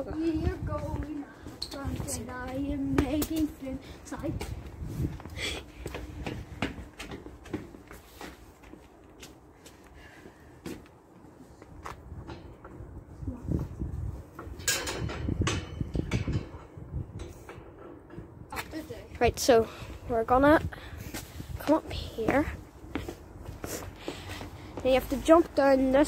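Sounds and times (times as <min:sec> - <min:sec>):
footsteps on pavement: 0:00.1 - 0:12.2, 0:20.4 - 0:26.0.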